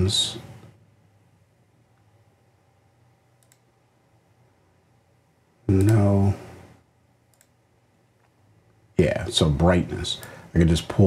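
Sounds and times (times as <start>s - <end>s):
faint low hum: 0.0s - 11.0s
computer mouse clicks: 3.4s - 3.7s, 5.7s - 6.0s, 7.3s - 7.6s.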